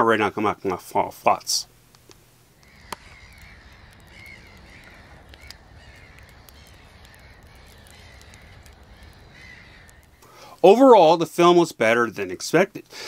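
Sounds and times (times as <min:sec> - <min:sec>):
low steady rumble: 0:01.6 - 0:10.2
soft clicks: 0:01.9 - 0:10.3
faint bird calls: 0:02.6 - 0:10.6.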